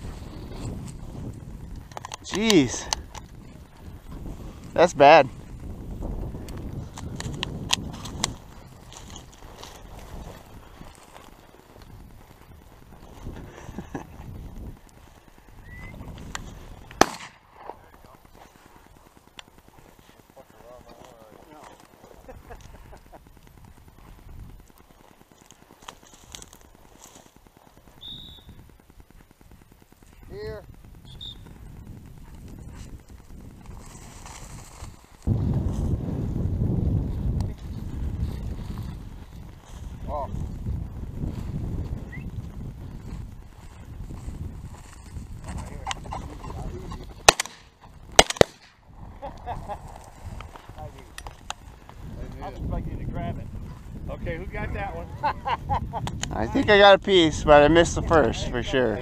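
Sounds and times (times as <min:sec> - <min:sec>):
wind rumbling on microphone: 0:00.0 - 0:59.0
shotgun shot: 0:17.0 - 0:17.5, 0:47.2 - 0:48.8.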